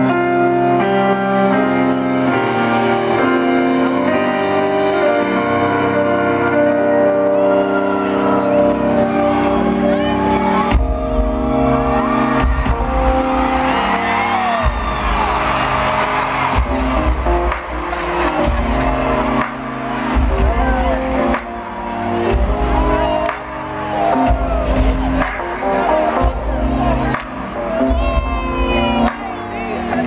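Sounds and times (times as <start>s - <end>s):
keyboard chords: 0.0s - 30.0s
bass and drums: 10.7s - 13.9s, 14.5s - 30.0s.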